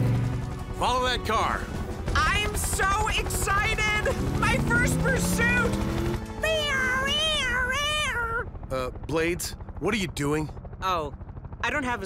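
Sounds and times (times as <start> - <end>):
cartoon voice imitating siren: 3.5 - 5.8, 6.4 - 8.4.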